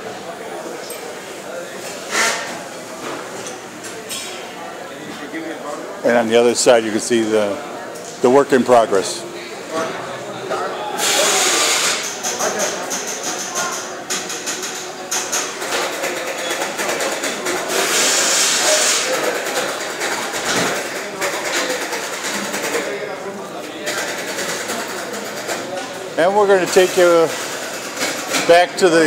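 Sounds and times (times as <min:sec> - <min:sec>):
workers chattering: 0:00.0 - 0:29.0.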